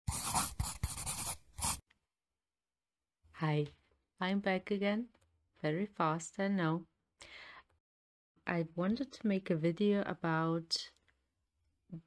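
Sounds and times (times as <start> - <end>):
scribbling on paper: 0.0 - 1.8.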